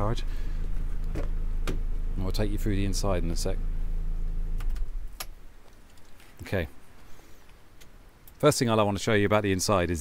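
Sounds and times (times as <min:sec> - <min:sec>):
car engine idling and cutting out: 0:00.0 - 0:05.2.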